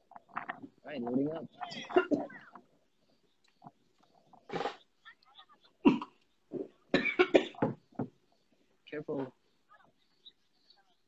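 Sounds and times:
cough: 0:01.7 - 0:02.3, 0:05.8 - 0:06.2, 0:06.9 - 0:07.8.

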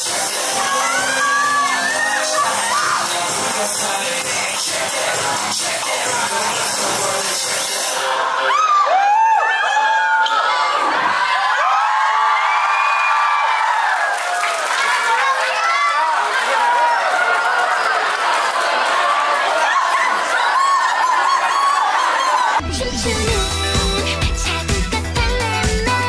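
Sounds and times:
crowd cheering and screaming: 0:00.0 - 0:04.4, 0:05.1 - 0:24.2
pop dance music over speakers: 0:00.0 - 0:08.5, 0:22.6 - 0:26.0.

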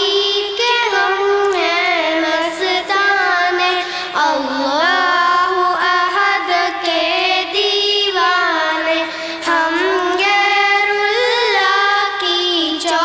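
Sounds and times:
girls singing into microphones: 0:00.0 - 0:13.0.

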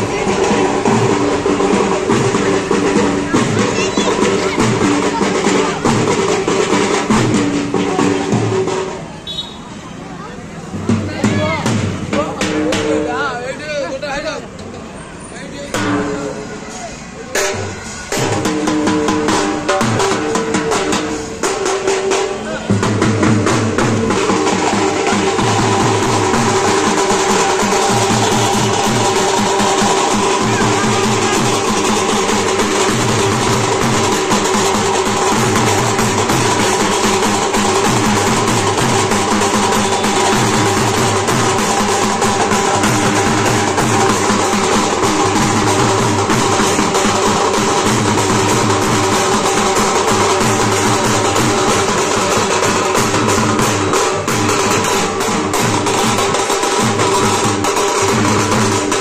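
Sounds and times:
drums beaten in steady rhythm: 0:00.0 - 0:59.0.

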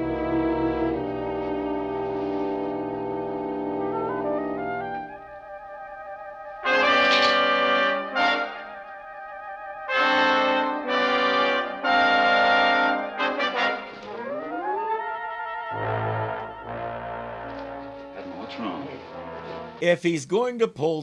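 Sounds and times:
dramatic orchestral brass music: 0:00.0 - 0:19.8.

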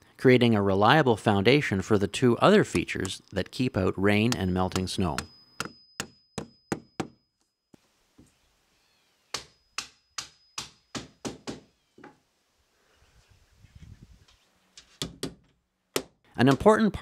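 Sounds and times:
hammer striking nails: 0:04.2 - 0:07.2, 0:09.3 - 0:11.7, 0:14.9 - 0:16.8.

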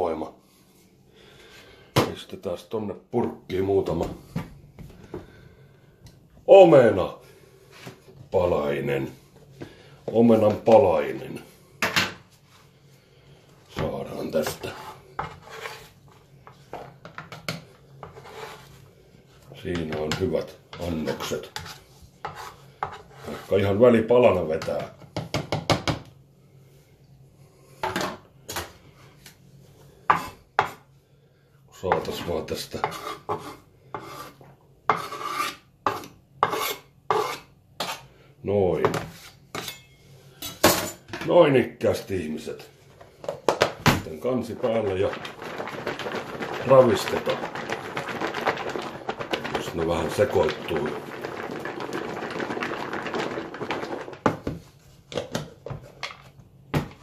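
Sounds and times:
pieces rattling in plastic tub: 0:44.2 - 0:54.6.

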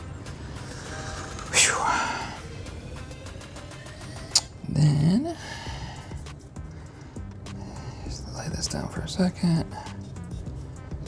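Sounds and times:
quiet background music: 0:00.0 - 0:11.0
man sighing: 0:01.4 - 0:02.5.

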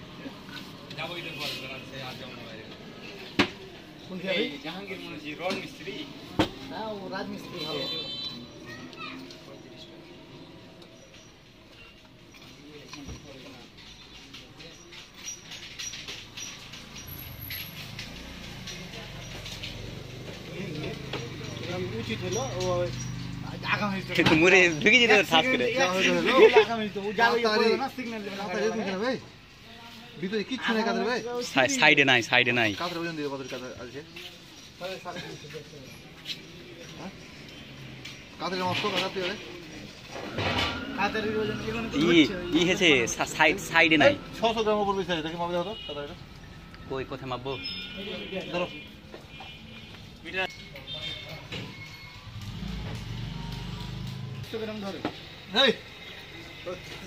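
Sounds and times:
people talking: 0:18.8 - 0:29.2.

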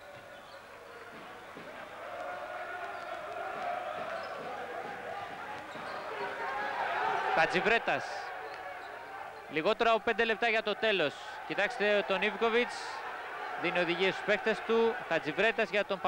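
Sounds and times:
crowd noise: 0:00.0 - 0:16.0
man's voice: 0:07.4 - 0:08.2, 0:09.5 - 0:13.0, 0:13.6 - 0:16.0.

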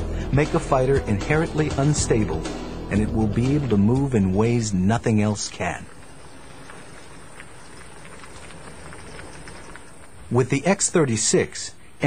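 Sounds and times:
outdoor background noise: 0:00.0 - 0:12.0
faint ticks and knocks: 0:05.9 - 0:10.2.

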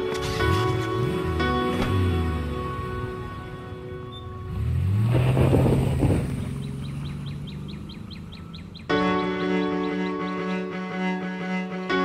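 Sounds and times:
soft background music: 0:00.0 - 0:05.0, 0:08.5 - 0:12.0
string music: 0:00.0 - 0:06.2, 0:07.1 - 0:12.0
car driving past: 0:04.2 - 0:08.8
bird chirping rapidly: 0:06.3 - 0:09.0.

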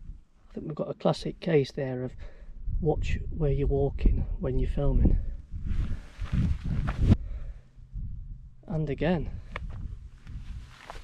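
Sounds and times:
footsteps on gritty path: 0:05.7 - 0:07.2, 0:09.5 - 0:11.0.

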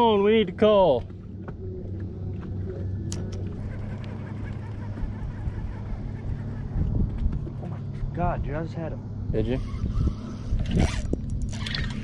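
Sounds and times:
low hum: 0:00.0 - 0:12.0
water noise around boat: 0:09.9 - 0:12.0.

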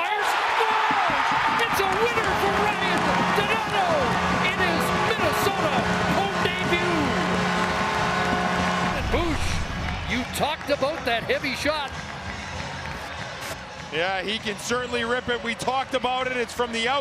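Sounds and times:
crowd cheering and whooping: 0:00.0 - 0:10.3
goal horn low steady tone: 0:01.8 - 0:09.7.

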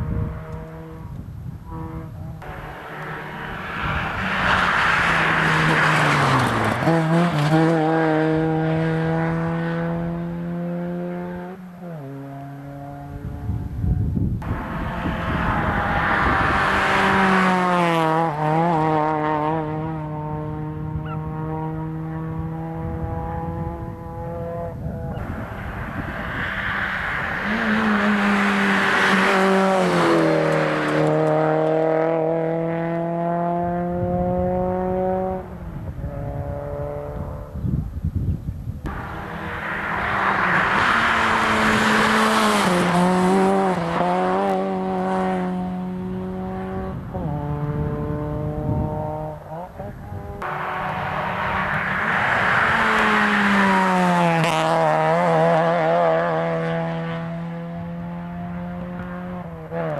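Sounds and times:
rally cars passing at speed: 0:00.0 - 0:38.0, 0:38.7 - 0:59.9.

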